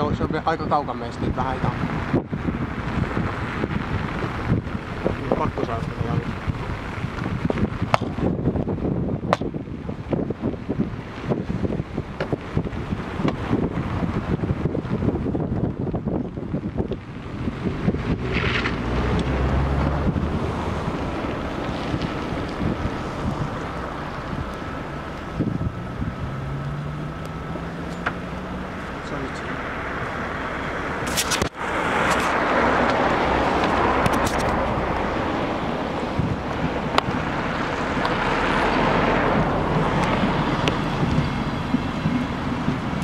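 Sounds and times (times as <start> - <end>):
car driving on snowy road: 0.0 - 43.0
wind buffeting microphone: 0.0 - 43.0
engine note rising: 17.3 - 41.9.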